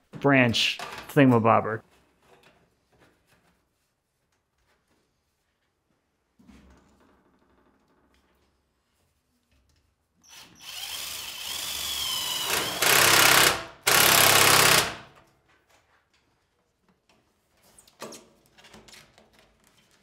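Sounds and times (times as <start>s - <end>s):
drill driving screws into metal: 10.2s - 15.2s.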